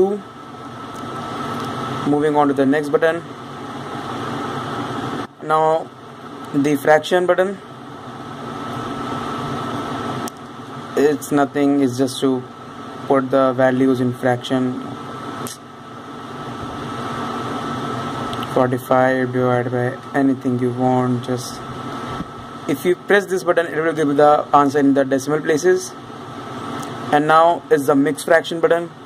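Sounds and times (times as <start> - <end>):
steady background hum and hiss: 0.0 - 29.0.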